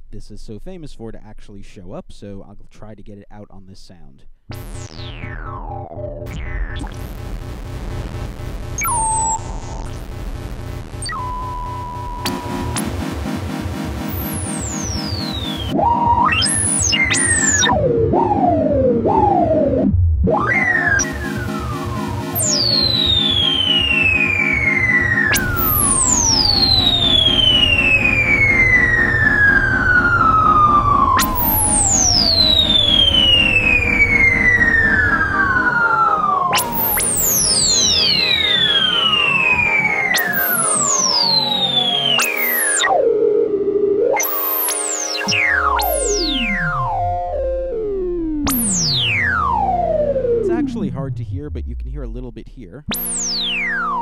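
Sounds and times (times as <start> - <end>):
synthesizer filter sweeps: 4.5 - 54.0.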